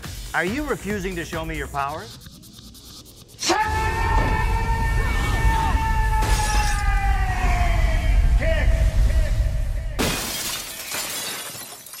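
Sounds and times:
glass shattering: 0:10.0 - 0:12.0.

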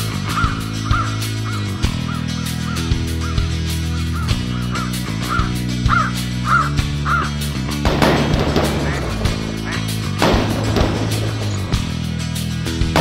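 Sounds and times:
crows cawing: 0:00.0 - 0:10.0
background music with bass line: 0:00.0 - 0:13.0.

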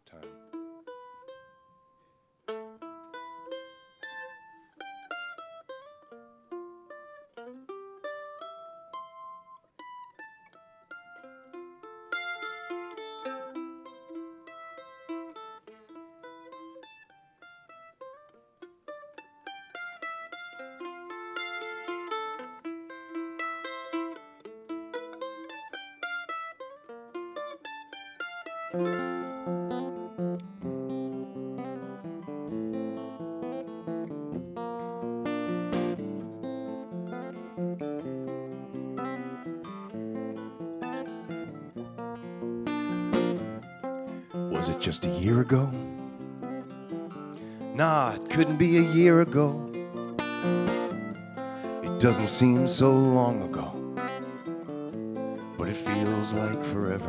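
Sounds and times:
mandolin picking melody: 0:00.0 - 0:57.0
acoustic guitar strumming: 0:10.9 - 0:57.0.

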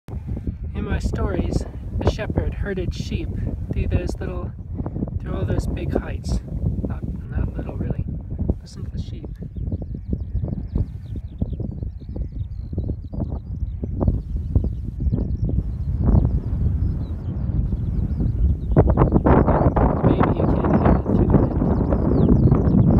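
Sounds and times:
wind buffeting microphone: 0:00.1 - 0:22.9.

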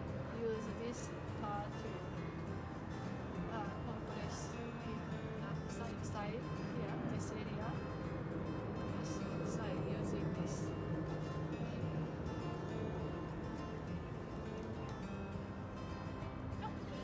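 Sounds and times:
background music with voice: 0:00.0 - 0:17.0.

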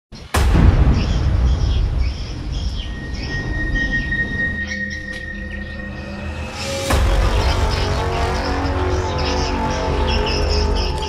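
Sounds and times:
deep rumbling: 0:00.3 - 0:11.0
boom: 0:00.4 - 0:04.1
high-pitched tone: 0:03.0 - 0:07.3.

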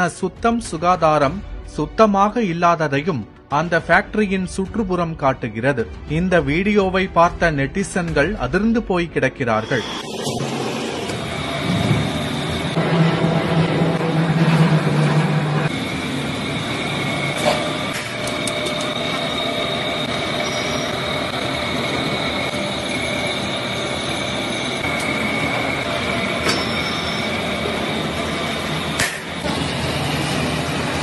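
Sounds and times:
low hum: 0:09.6 - 0:31.0.

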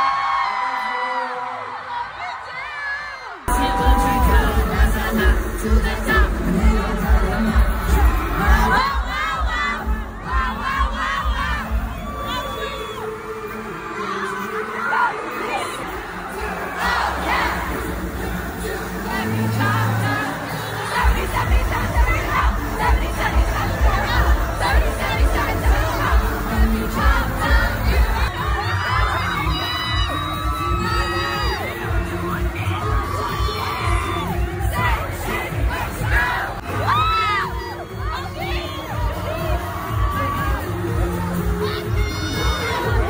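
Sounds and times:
amplified pop music: 0:00.0 - 0:43.0
crowd screaming and cheering: 0:00.0 - 0:43.0.

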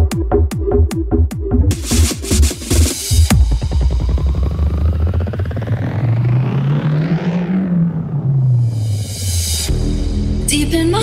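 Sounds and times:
dance music beat: 0:00.0 - 0:11.0
rising noise sweep: 0:01.7 - 0:10.0
deep bass tone gliding upward: 0:03.1 - 0:10.8.

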